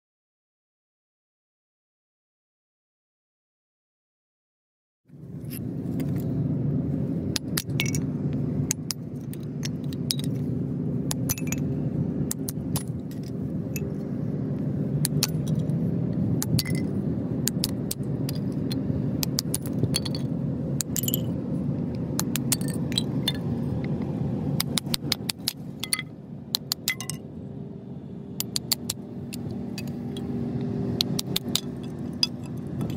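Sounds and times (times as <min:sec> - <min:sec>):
steady low background noise: 0:05.1 - 0:32.9.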